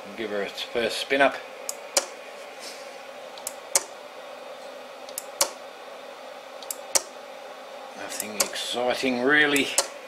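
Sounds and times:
micro switch clicking: 1.7s - 2.1s, 3.4s - 3.9s, 5.1s - 5.6s, 6.6s - 7.1s.

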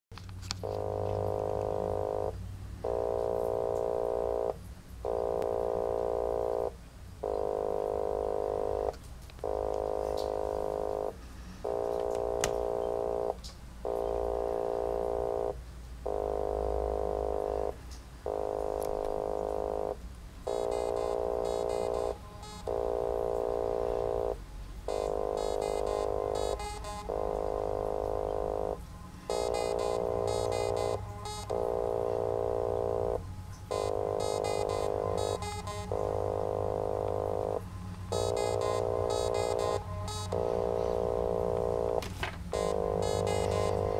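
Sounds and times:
sustained synthesizer notes: 0.6s - 43.9s
high fast electronic chattering: 24.9s - 40.4s, 42.6s - 43.9s.

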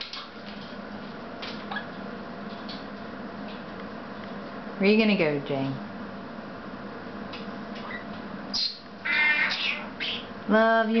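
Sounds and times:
parrots calling: 7.8s - 10.4s.

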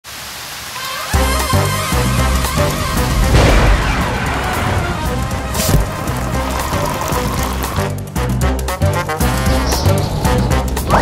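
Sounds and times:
rain hiss: 0.0s - 8.2s
music with low bass: 1.2s - 11.0s.

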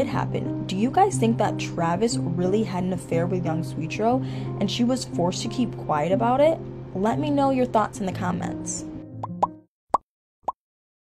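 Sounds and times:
background music: 0.0s - 9.7s
pop sound effects: 9.2s - 10.0s.

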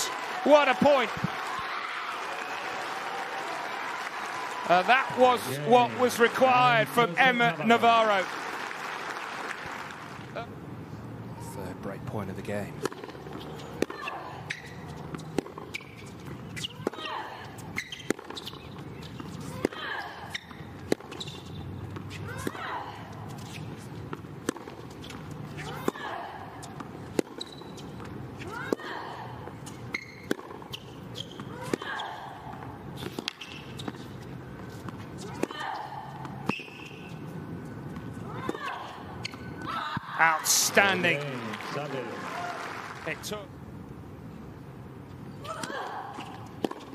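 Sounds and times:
rackets striking tennis ball: 12.8s - 29.0s, 29.8s - 37.3s, 45.5s - 46.9s
tennis ball bouncing: 12.8s - 37.3s, 37.9s - 40.1s, 45.5s - 46.9s.

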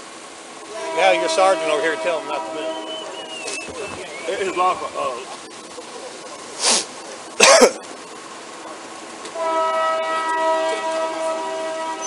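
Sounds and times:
train horn chord: 0.6s - 3.4s, 9.3s - 12.0s.

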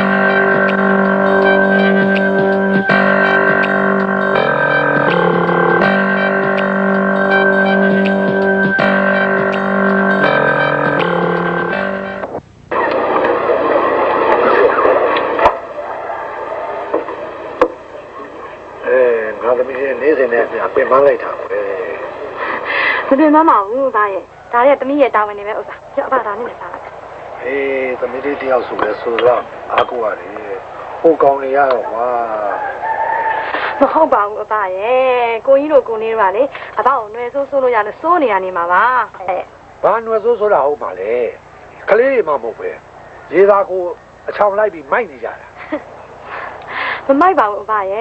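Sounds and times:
voices talking: 12.7s - 48.0s
rooster crowing: 31.8s - 34.2s.

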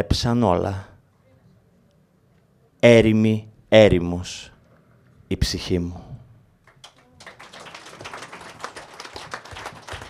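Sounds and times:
audience applause: 6.7s - 10.0s.

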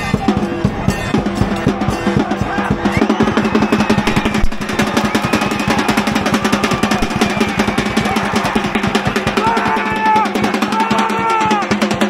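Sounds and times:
crowd voices: 0.0s - 12.0s
drums beating rapidly: 0.0s - 12.0s.

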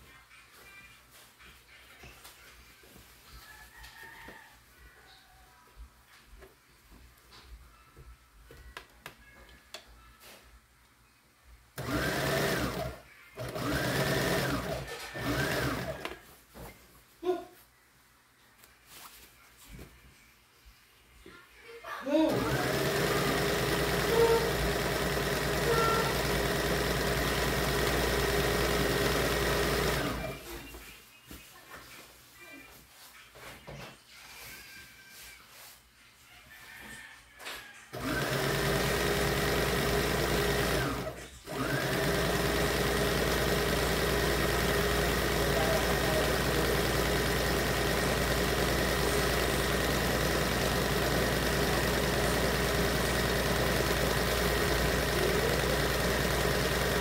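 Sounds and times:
sewing machine running: 11.8s - 16.1s, 22.3s - 30.6s, 37.9s - 57.0s.

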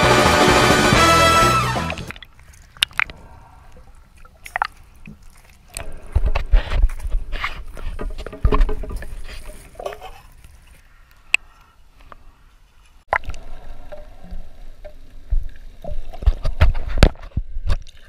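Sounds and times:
shallow water splashing: 2.0s - 11.4s, 13.0s - 18.0s.

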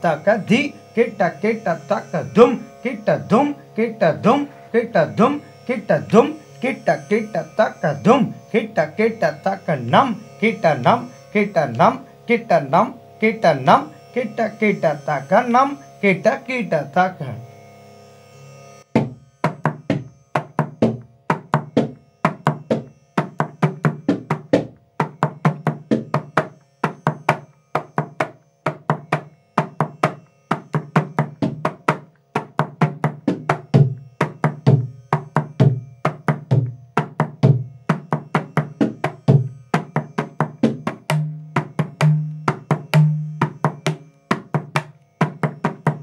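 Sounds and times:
mridangam finger strokes: 0.0s - 17.0s, 18.8s - 46.0s.

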